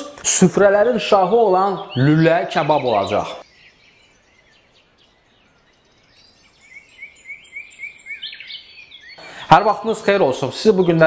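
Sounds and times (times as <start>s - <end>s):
small bird chirping: 0.9s - 11.0s.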